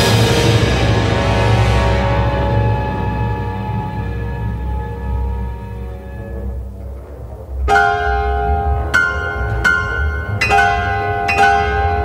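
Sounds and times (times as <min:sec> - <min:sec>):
low sustained orchestral rumble: 0:00.0 - 0:12.0
bell-like piano chords: 0:01.8 - 0:12.0.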